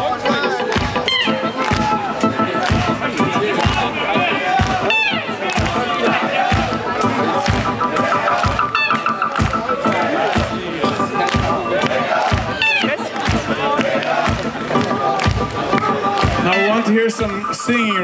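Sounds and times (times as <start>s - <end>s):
crowd noise: 0.0s - 18.0s
live band playing: 0.0s - 18.0s
steady drum beat: 0.0s - 18.0s.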